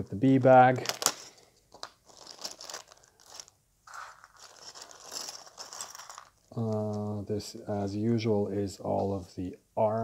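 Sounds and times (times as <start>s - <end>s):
plastic bag crinkling: 0.6s - 7.0s.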